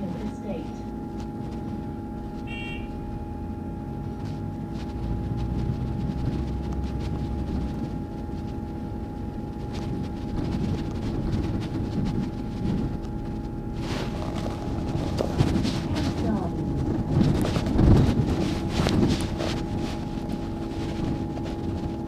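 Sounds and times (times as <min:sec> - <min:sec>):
bus engine low rumble: 0:00.0 - 0:22.0.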